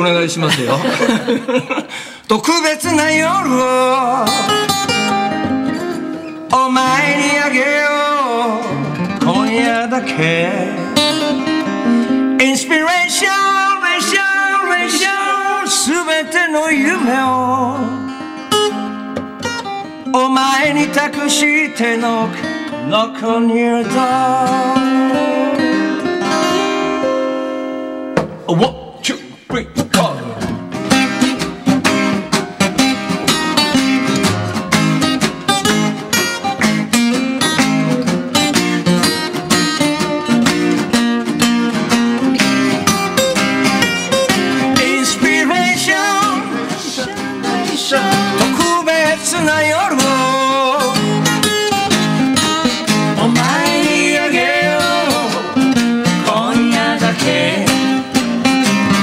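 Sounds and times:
acoustic guitar strumming: 0.0 - 59.0
man singing: 0.5 - 5.0, 6.4 - 11.5, 12.4 - 18.1, 20.0 - 26.0, 44.2 - 51.9, 52.6 - 58.2.

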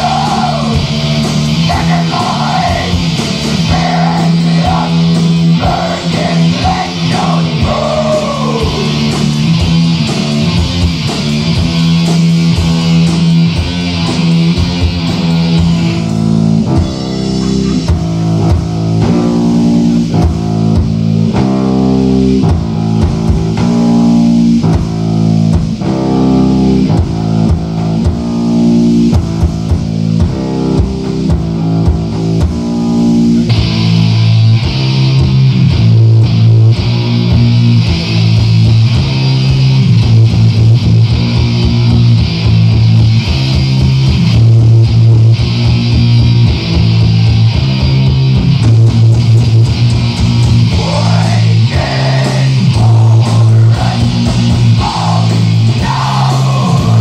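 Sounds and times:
bass guitar: 0.0 - 57.0
distorted electric guitar: 0.0 - 57.0
drums: 0.0 - 57.0.

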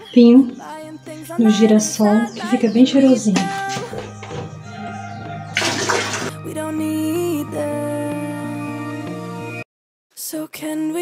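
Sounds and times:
background music: 0.0 - 9.6
liquid splashing into toilet bowl: 5.5 - 6.4.

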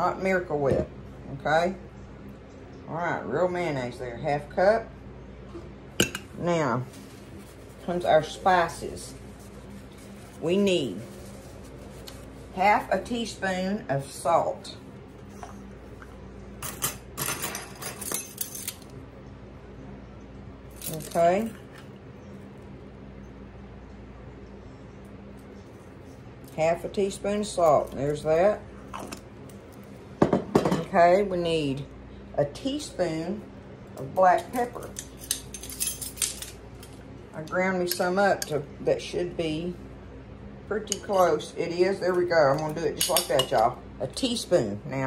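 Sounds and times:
metal spoons jangling: 17.3 - 18.8, 35.2 - 36.6.

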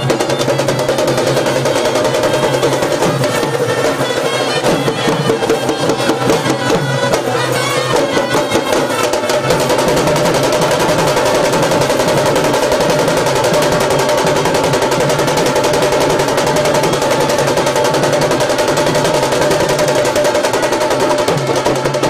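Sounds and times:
drum band drumming: 0.0 - 22.0
held melody line: 0.0 - 22.0.

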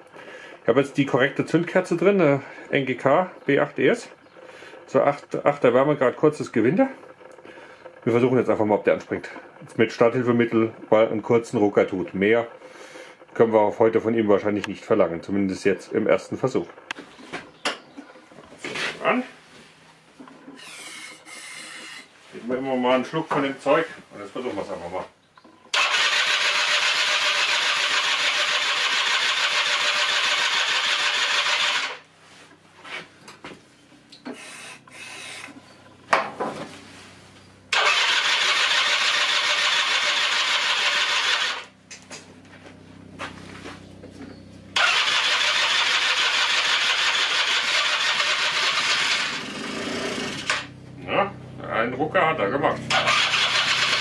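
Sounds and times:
scooter electric starter cranking: 25.7 - 32.0, 37.7 - 41.7, 44.8 - 50.7, 52.9 - 54.0.

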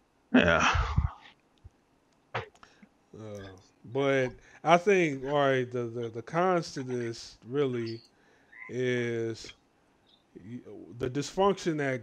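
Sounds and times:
person saying yeah: 0.4 - 1.2
man speaking: 3.2 - 8.0, 8.7 - 9.5, 10.4 - 12.0.

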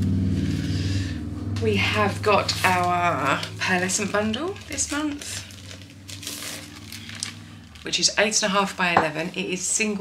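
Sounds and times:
cellophane crinkling: 2.4 - 8.8.

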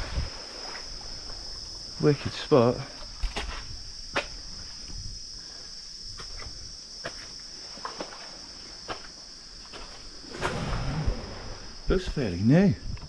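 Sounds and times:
rustle: 0.0 - 13.0.

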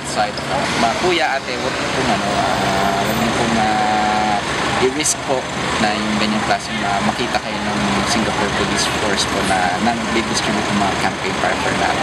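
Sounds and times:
low held drone: 0.0 - 12.0
road traffic noise: 0.0 - 12.0.

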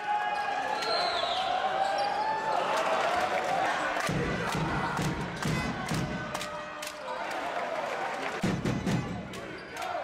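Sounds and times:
crowd cheering and chanting: 0.0 - 10.0.

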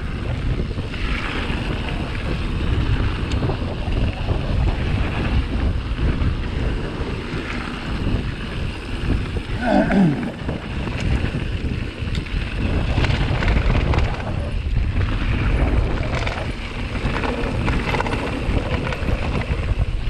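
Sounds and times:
bike tyres rumbling on gravel: 0.0 - 20.0
wind buffeting microphone: 0.0 - 20.0.

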